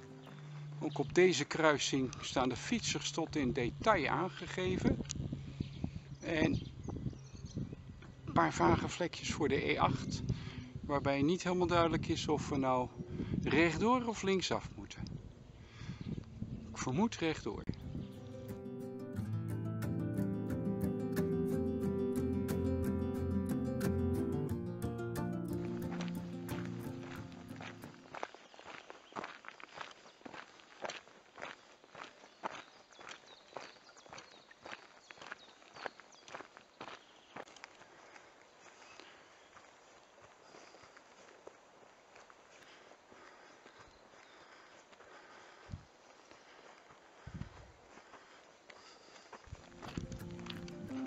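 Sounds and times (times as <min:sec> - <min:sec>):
footsteps on gravel: 0:00.0 - 0:02.3, 0:25.4 - 0:51.0
background music: 0:18.0 - 0:28.1, 0:49.7 - 0:51.0.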